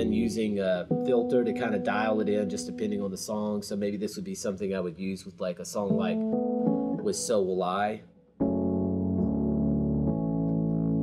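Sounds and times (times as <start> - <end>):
electric piano chords: 0.0 - 3.2, 5.8 - 7.8, 8.4 - 11.0.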